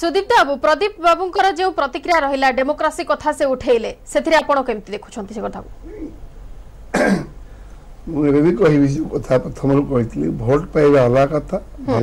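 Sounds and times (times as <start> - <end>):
person throat-clearing cough: 6.9 - 7.4.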